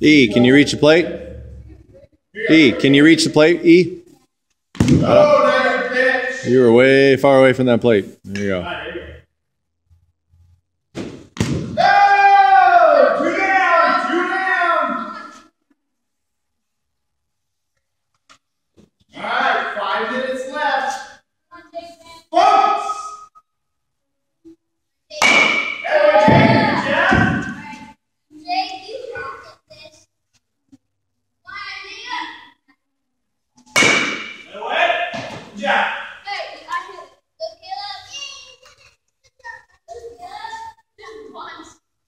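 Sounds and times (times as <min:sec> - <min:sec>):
baseball bat hitting ball: 0:04.8 - 0:05.3, 0:11.0 - 0:11.8, 0:25.2 - 0:27.6, 0:33.7 - 0:35.5
children's voices: 0:26.1 - 0:30.1, 0:31.5 - 0:32.6, 0:36.2 - 0:41.8.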